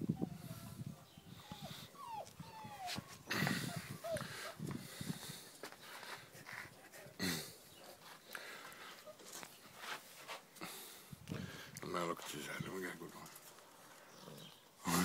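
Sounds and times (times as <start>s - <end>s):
puppy whimpering: 0.2s - 4.6s
rustling: 7.9s - 10.6s.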